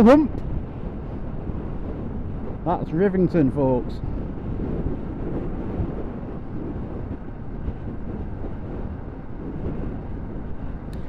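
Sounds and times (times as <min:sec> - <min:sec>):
wind and road noise: 0:00.0 - 0:11.0.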